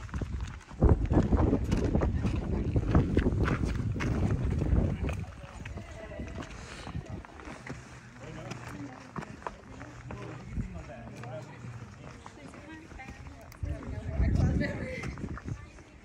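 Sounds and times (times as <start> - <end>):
footsteps scuffing on rock: 0.0 - 16.0
voices talking faintly: 0.8 - 16.0.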